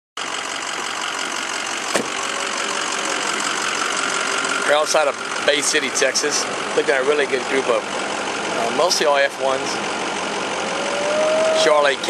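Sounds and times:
vehicle engine idling: 0.2s - 12.0s.

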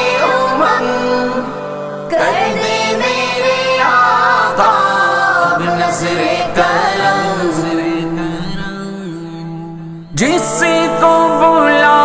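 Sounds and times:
backing vocals: 0.0s - 12.0s
man singing devotional melody: 0.0s - 12.0s.

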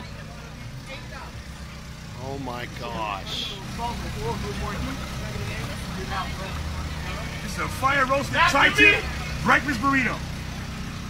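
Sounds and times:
faint voices: 0.0s - 10.4s.

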